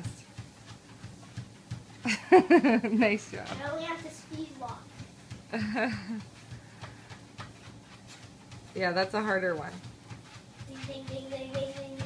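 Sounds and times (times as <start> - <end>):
child's footfalls on treadmill belt: 0.0 - 12.0
treadmill running: 0.0 - 12.0.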